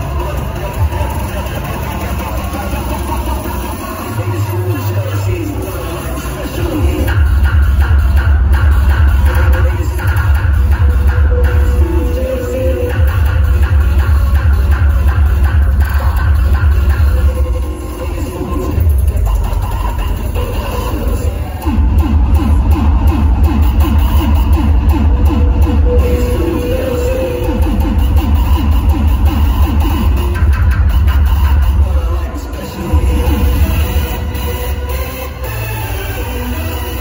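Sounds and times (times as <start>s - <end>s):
distorted hardcore club music: 0.0s - 37.0s.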